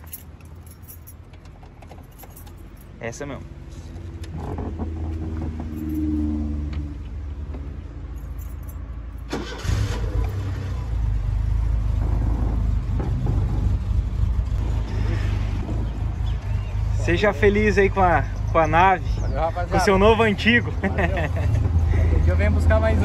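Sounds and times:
car engine starting and running: 0.7 - 23.0.

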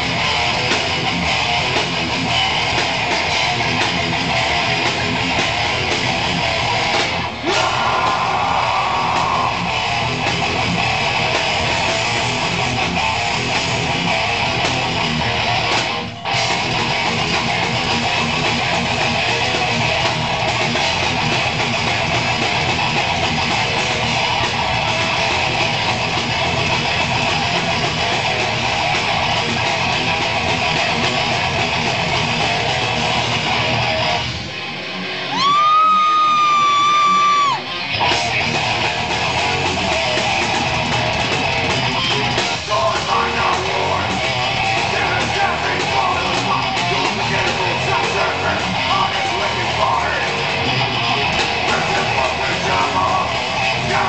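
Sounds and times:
high guitar tone held: 0.0 - 54.0
live band electric guitar music: 0.0 - 54.0.

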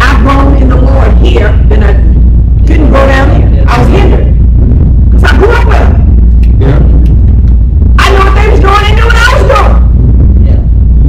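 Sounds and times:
loud low hum: 0.0 - 11.0.

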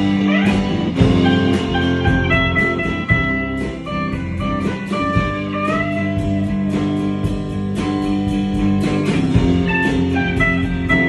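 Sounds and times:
electric guitars strumming chords: 0.0 - 11.0
guitar held single notes: 0.0 - 11.0.

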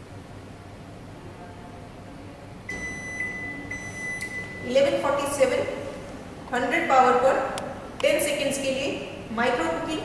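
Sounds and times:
microwave high-pitched beep: 2.7 - 5.8.

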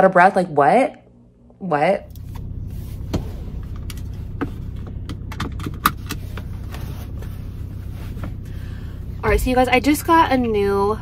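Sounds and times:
car idling hum: 2.0 - 11.0.

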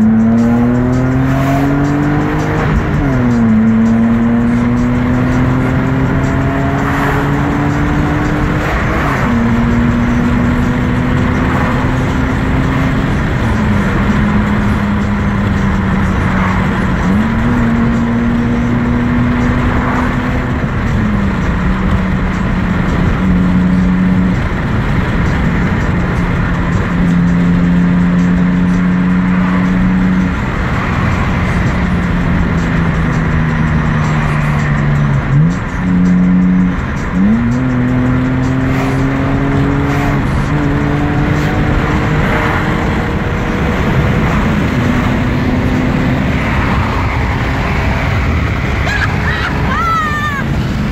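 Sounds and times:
car engine drone with gear changes: 0.0 - 50.9.

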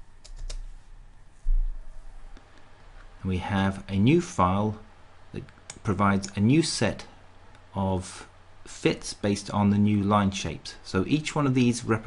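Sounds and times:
keyboard and mouse clicks: 0.2 - 0.6.

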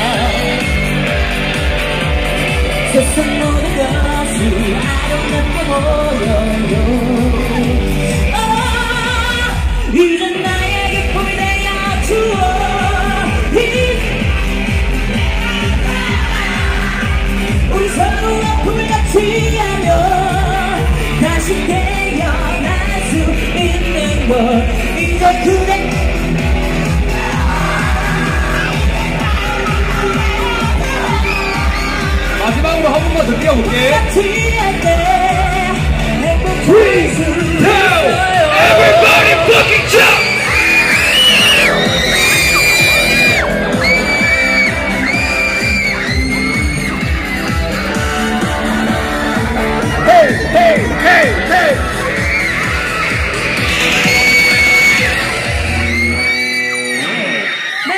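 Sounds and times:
crowd screaming: 0.0 - 4.2, 6.6 - 9.7, 25.9 - 34.0, 36.4 - 57.9
person singing over pop backing: 0.0 - 26.1, 33.4 - 40.6.

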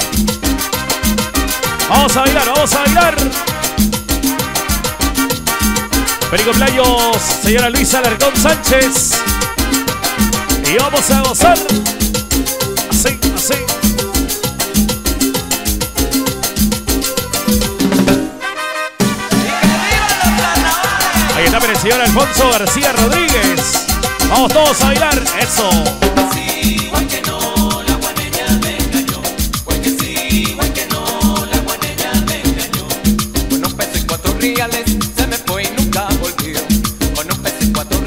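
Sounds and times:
congas: 0.0 - 38.0
latin dance band playing: 0.0 - 38.0.

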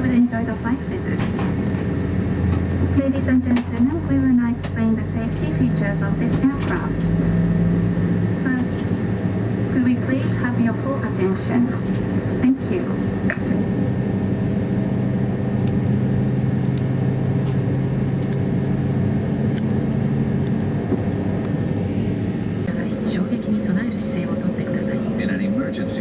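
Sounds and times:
aircraft cabin drone: 0.0 - 26.0.

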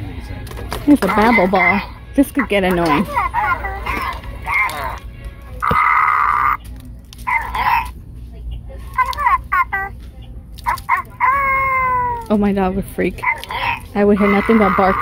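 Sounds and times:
talking toy voice clips: 0.9 - 8.0, 8.9 - 10.0, 10.6 - 12.4, 13.1 - 15.0.

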